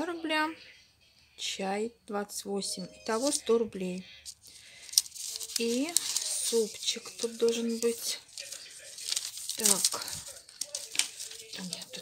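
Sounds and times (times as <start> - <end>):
paper receipts rustling: 3.1 - 3.4, 4.2 - 12.0.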